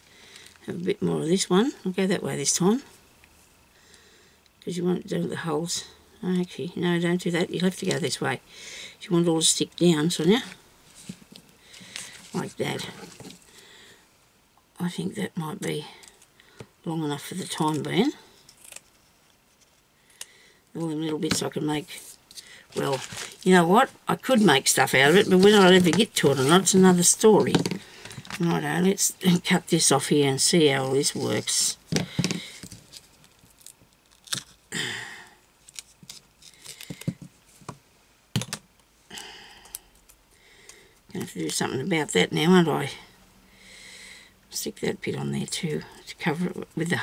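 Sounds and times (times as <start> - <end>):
tape crinkling rustles: 10.4 - 13.6, 17.4 - 19.9, 20.8 - 28.5, 31.0 - 34.7, 35.6 - 37.7.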